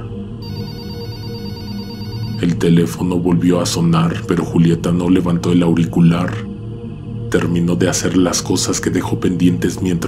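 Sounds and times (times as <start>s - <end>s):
background music: 0.0s - 10.0s
telephone bell ringing: 0.4s - 2.6s.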